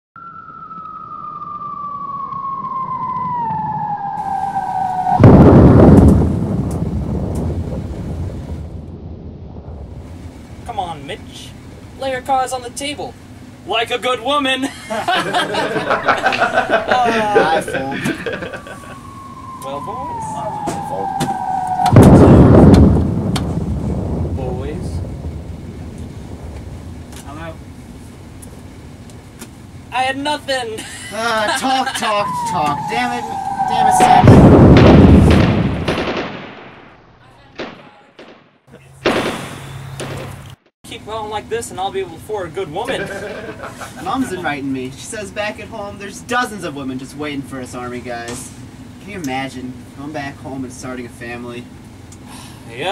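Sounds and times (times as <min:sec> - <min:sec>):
descending bomb whistle: 0:00.2 - 0:06.2, 0:15.7 - 0:23.0, 0:31.8 - 0:35.5
loud explosion with rumble: 0:00.7 - 0:10.7, 0:18.4 - 0:27.7, 0:32.5 - 0:37.0, 0:37.6 - 0:40.4.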